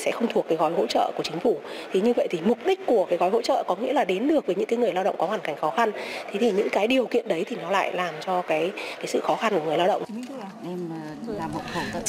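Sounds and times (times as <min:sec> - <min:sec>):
indistinct voices in a room: 0:00.0 - 0:12.0.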